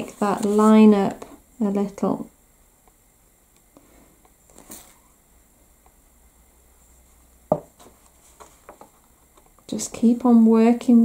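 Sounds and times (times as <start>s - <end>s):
glass bottle knocking on table: 7.5s - 7.7s.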